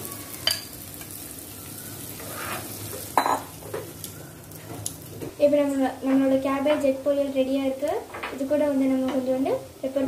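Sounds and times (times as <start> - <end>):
food sizzling in a pan: 0.0 - 10.0
spatula scraping: 2.2 - 2.8.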